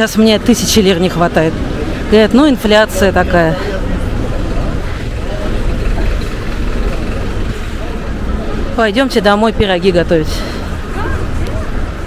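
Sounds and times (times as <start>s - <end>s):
truck engine idling: 1.0s - 12.0s.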